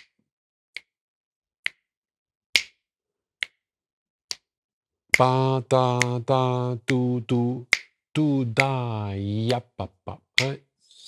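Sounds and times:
finger snaps: 0.0 - 0.2, 0.8 - 1.0, 1.6 - 1.9, 2.6 - 2.8, 4.3 - 4.5, 5.1 - 8.0, 10.4 - 10.6.

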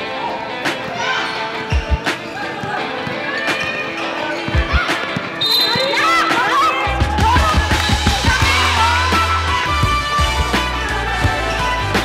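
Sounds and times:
music: 0.0 - 12.0
players calling out: 0.0 - 12.0.

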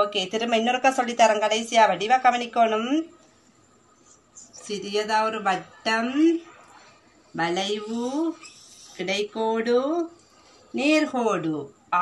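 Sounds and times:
woman speaking: 0.0 - 3.2, 4.4 - 6.6, 7.3 - 12.0
marker on whiteboard: 7.6 - 9.1.

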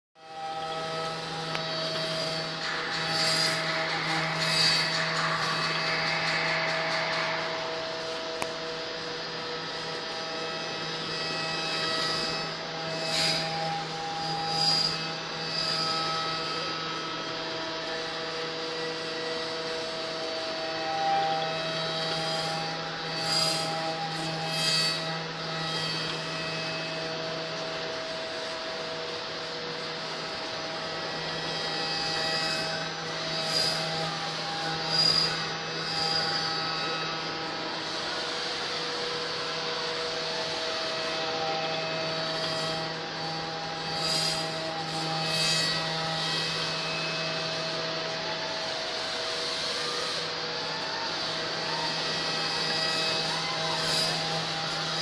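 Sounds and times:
milling machine hum: 0.2 - 55.0
spindle and cutter hiss: 0.4 - 48.0.

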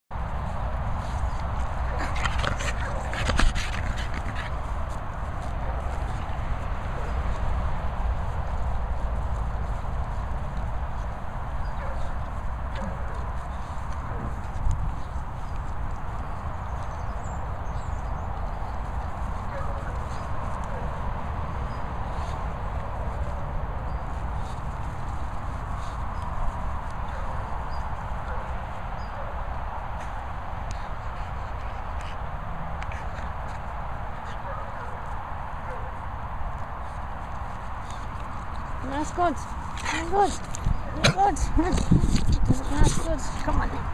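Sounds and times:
wind rumble on microphone: 0.1 - 43.9
dogs breathing and snuffling: 0.2 - 43.9.

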